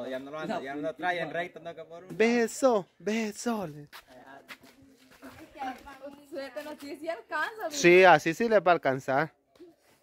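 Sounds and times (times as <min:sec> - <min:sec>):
people talking in background: 0:03.4 - 0:08.2.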